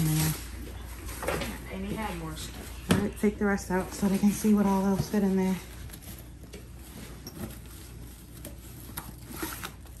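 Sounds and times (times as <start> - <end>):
rustling of school supplies: 0.0 - 10.0.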